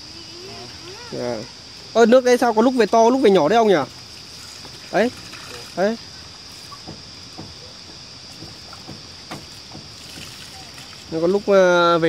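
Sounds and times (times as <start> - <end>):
water pouring onto mud: 3.8 - 7.0, 8.5 - 12.0.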